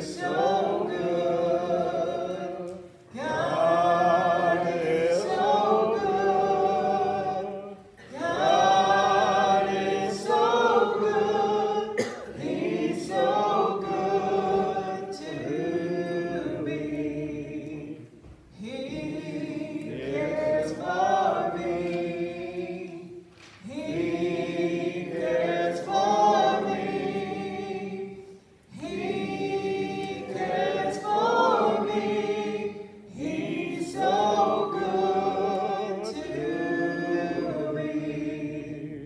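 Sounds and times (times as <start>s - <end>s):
congregation singing a hymn: 0.0s - 39.0s.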